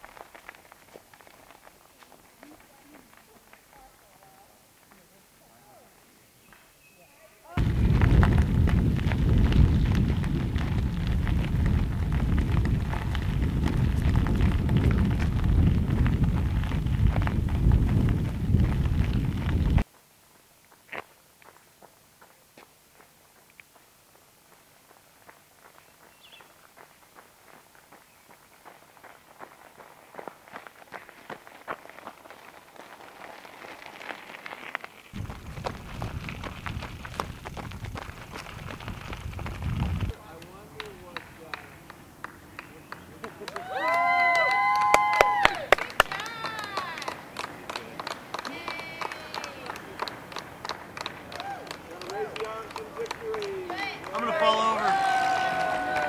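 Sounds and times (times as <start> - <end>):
footsteps crunching on gravel: 0.0 - 5.1, 7.6 - 19.9, 20.6 - 41.9
wind buffeting microphone: 7.6 - 19.8, 35.1 - 40.2.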